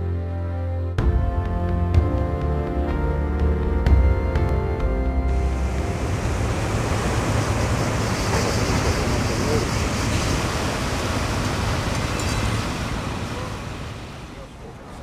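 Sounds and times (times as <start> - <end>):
wind rushing: 5.3 - 14.0
low steady hum: 5.3 - 15.0
ocean surf: 5.3 - 15.0.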